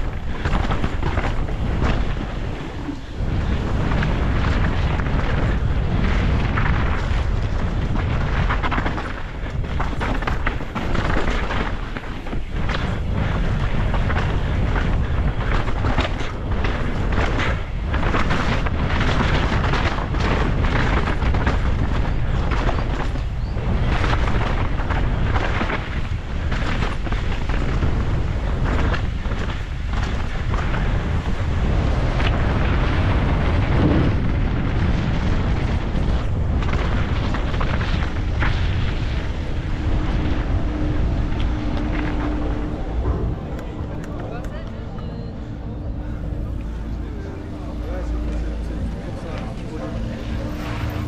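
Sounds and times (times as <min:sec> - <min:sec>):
bike clattering over ruts: 0:00.0 - 0:44.4
wind buffeting microphone: 0:00.0 - 0:51.0.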